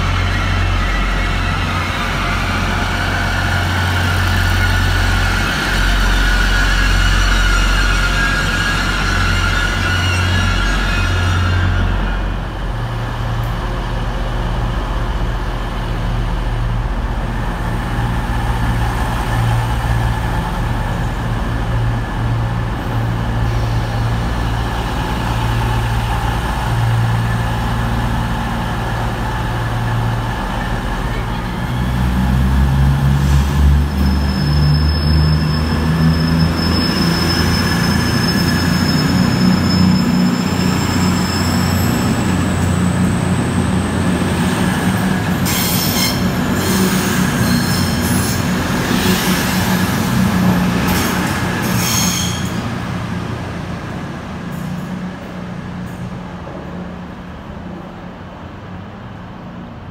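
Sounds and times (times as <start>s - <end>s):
diesel engines rumbling: 0.0s - 59.9s
diesel train engine with whine: 0.0s - 59.9s.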